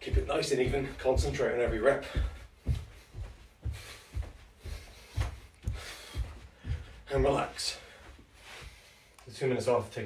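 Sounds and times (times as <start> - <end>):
feet thudding on carpet: 0.0 - 9.0.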